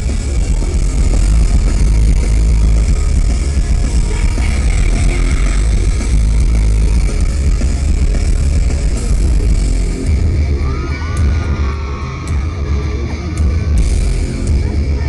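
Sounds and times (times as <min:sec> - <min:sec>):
drums: 0:00.0 - 0:15.0
electric guitars: 0:00.0 - 0:15.0
heavy bass: 0:00.0 - 0:15.0.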